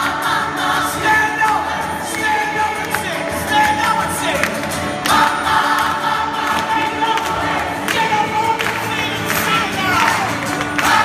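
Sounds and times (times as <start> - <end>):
acoustic guitar: 0.0 - 11.0
choir singing: 0.0 - 11.0.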